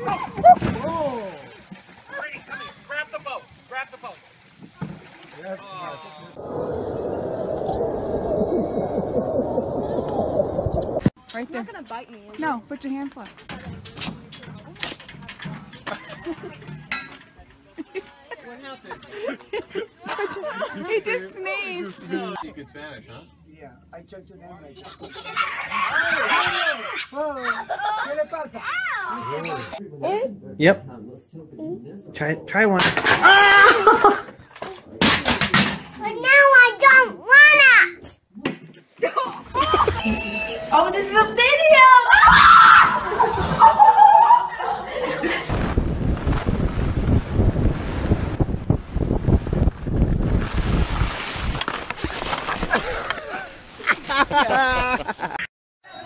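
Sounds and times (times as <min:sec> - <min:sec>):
women laughing and shrieking: 0:25.1 - 0:28.2, 0:33.2 - 0:34.3, 0:39.0 - 0:40.8, 0:42.0 - 0:45.5.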